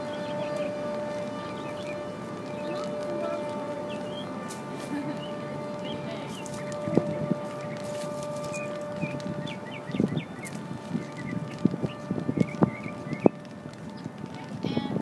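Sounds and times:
birds chirping: 0.0s - 14.9s
footsteps on pavement: 0.0s - 15.0s.

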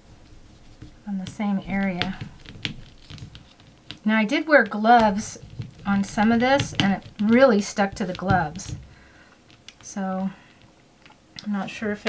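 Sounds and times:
hands rolling putty: 0.2s - 4.1s, 4.9s - 10.3s.

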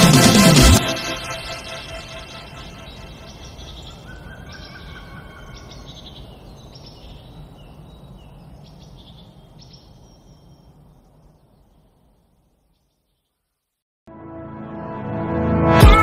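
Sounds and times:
bird chirps: 1.3s - 13.4s.

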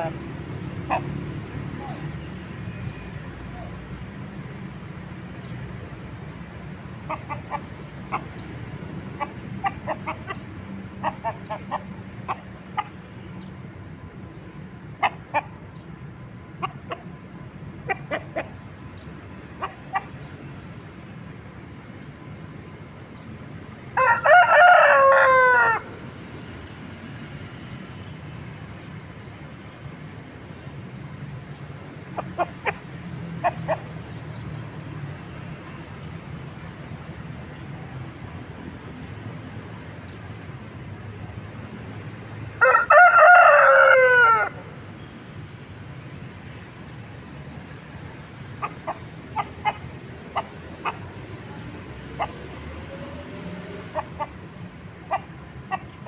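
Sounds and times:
rooster clucking: 0.0s - 2.1s, 7.0s - 13.0s, 14.9s - 15.6s, 16.6s - 17.2s, 17.8s - 18.6s, 19.5s - 20.2s, 32.1s - 34.1s, 48.4s - 56.0s
rooster crowing: 24.0s - 25.9s, 42.6s - 44.6s.

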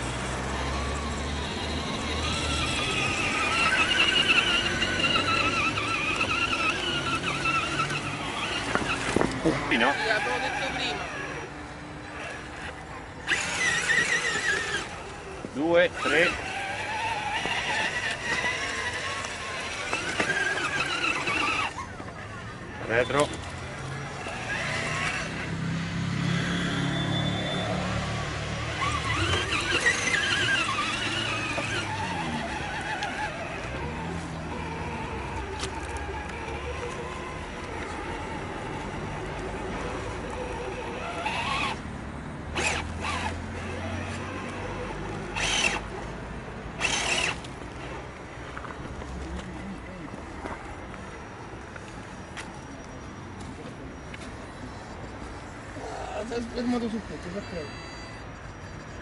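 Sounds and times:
electric motor and gears whining: 0.0s - 59.0s.

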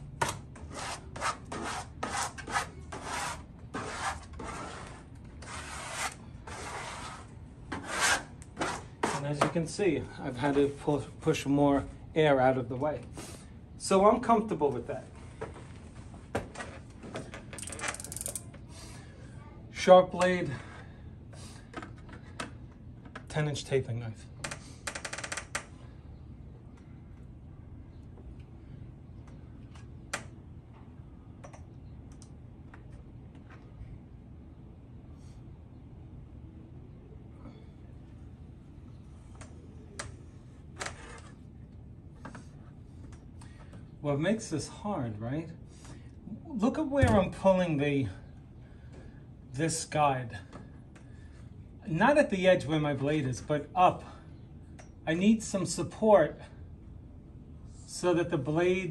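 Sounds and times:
knife scraping wallpaper: 0.2s - 9.3s
ratcheting blade slider clicks: 17.6s - 18.4s.

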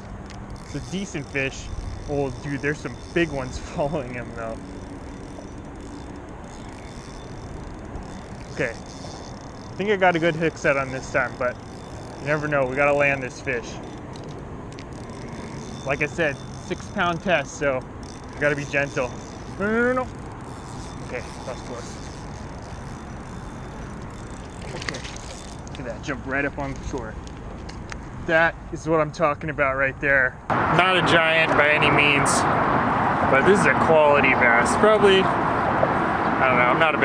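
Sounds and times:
road traffic hum: 0.0s - 37.0s
rushing outdoor background noise: 0.0s - 37.0s.

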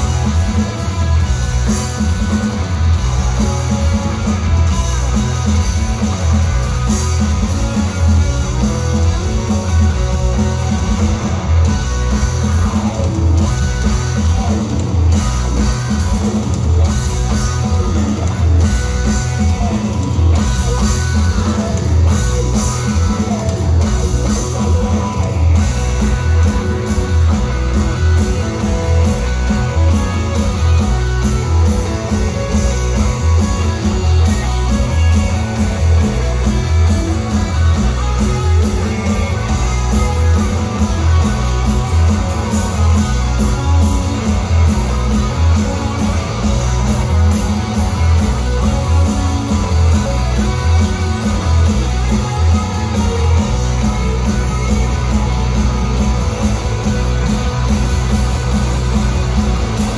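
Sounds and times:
live rock band playing: 0.0s - 59.9s.

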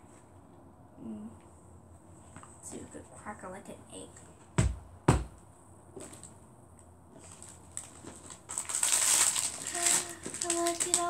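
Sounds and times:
packaging rustling: 7.2s - 11.0s.

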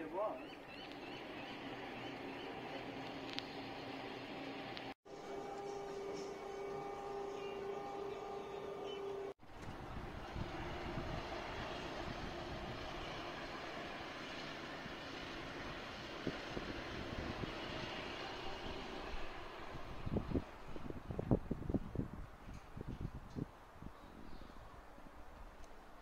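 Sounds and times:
distant machinery rumble: 0.0s - 21.8s.

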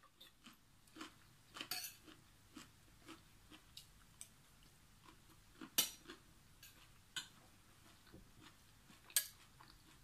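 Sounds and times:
metal spoon clinking on glass bowl: 1.7s - 2.1s.

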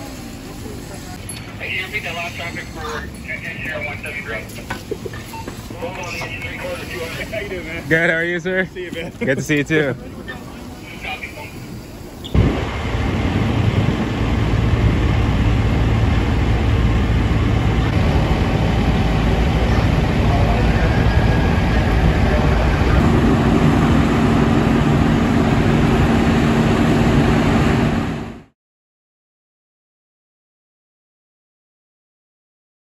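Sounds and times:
diesel engines running: 0.0s - 28.5s.

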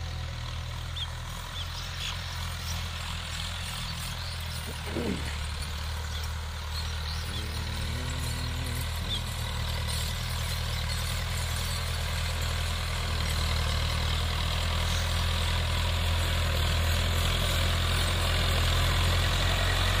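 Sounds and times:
tractor diesel engine under load: 0.0s - 20.0s.

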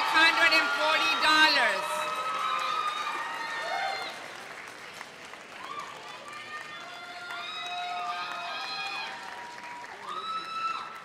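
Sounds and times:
audience applauding: 0.0s - 11.0s
people cheering: 0.0s - 11.0s.

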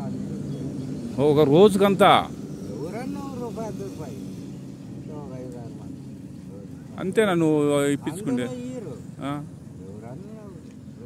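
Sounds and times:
man talking: 6.5s - 11.0s.

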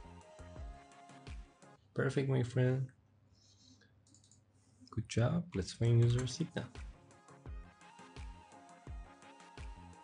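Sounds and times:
man speaking: 2.0s - 3.0s, 4.9s - 6.8s
computer keyboard clicking: 4.0s - 4.4s, 6.0s - 6.4s.

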